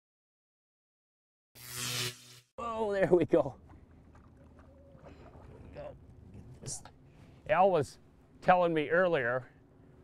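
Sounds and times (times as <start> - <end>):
water noise: 3.2 - 7.4
low wind: 3.2 - 10.0.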